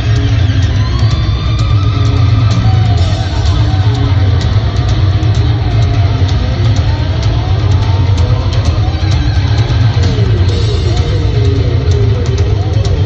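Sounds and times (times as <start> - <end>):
hard rock band playing live: 0.0 - 13.0.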